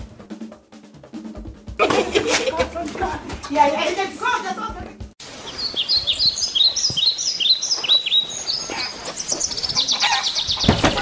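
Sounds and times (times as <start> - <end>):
bird chirping: 5.3 - 11.0
bird trill: 5.4 - 11.0.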